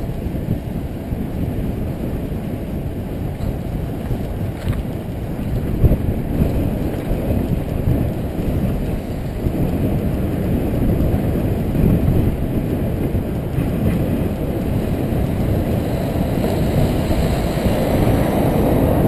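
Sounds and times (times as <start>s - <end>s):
bicycle tyre noise on road: 0.0s - 19.0s
wind buffeting microphone: 0.0s - 19.0s.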